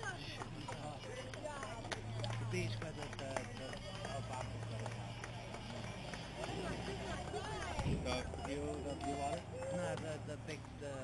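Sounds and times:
chatter of spectators: 0.0s - 11.0s.

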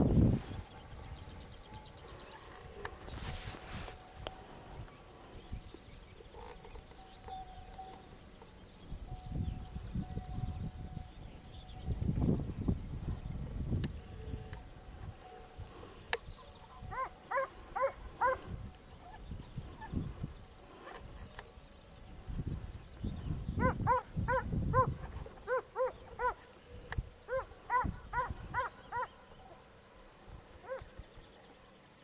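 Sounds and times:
rumbling buffets on microphone: 0.0s - 5.6s, 9.0s - 15.8s, 22.2s - 25.3s
insects chirring: 0.0s - 32.0s.

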